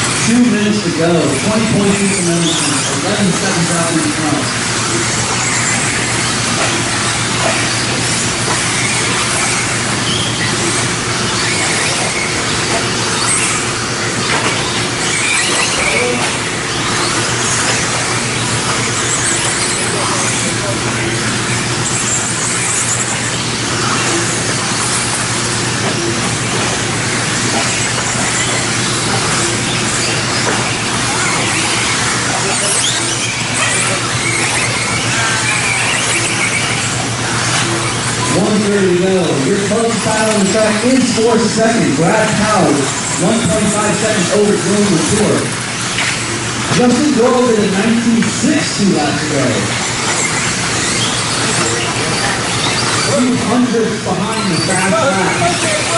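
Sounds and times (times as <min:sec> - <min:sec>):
high-pitched motor whine: 0:00.0 - 0:55.9.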